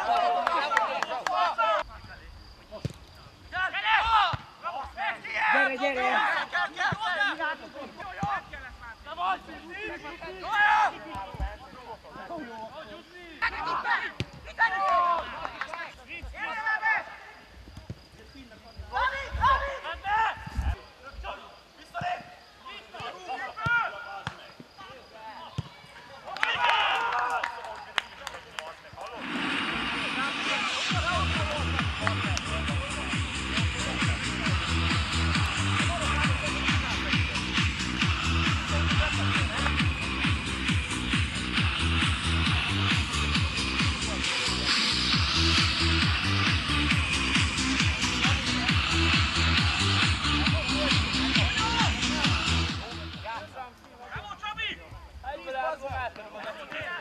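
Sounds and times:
people shouting on a football pitch: 0.0s - 1.9s, 3.5s - 17.5s, 18.9s - 28.1s, 29.8s - 57.0s
music with a steady beat: 30.9s - 53.3s.

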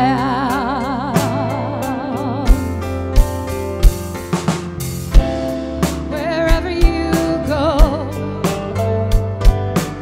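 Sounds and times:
drum kit beats: 0.0s - 10.0s
live rock band playing: 0.0s - 10.0s.

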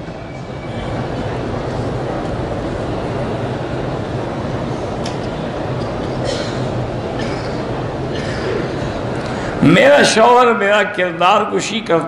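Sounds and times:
steady rumbling noise: 0.0s - 12.0s.

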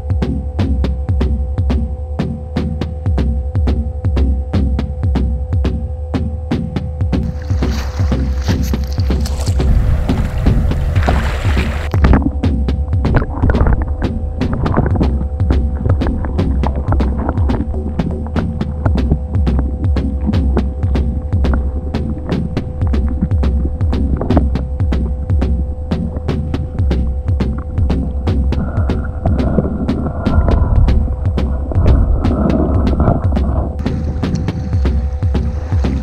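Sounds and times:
background music with throbbing pulse: 0.0s - 36.0s
rushing noise: 21.2s - 36.0s.

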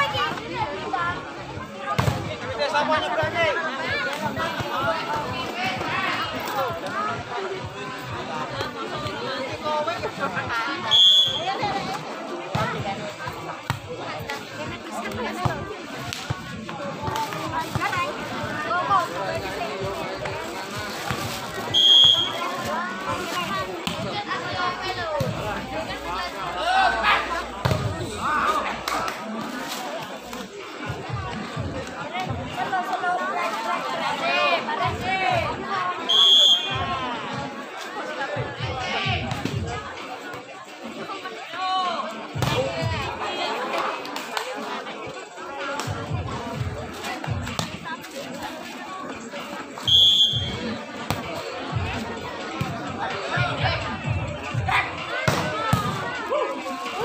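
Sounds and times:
babble of spectators' voices: 0.0s - 57.0s
referee's whistle blasts: 10.9s - 11.5s, 21.7s - 22.4s, 36.1s - 36.8s, 49.8s - 50.6s.

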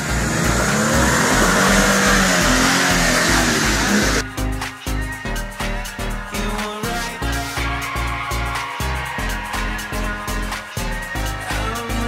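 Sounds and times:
car engine revving: 0.0s - 4.2s
background music with beat: 0.0s - 12.0s.

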